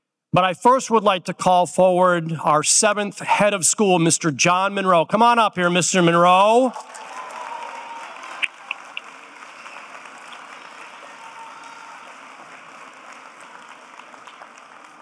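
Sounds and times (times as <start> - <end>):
audience applauding: 6.5 - 15.0.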